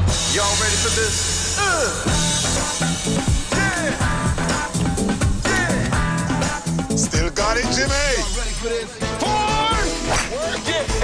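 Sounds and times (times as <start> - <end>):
upbeat band music: 0.0 - 11.0.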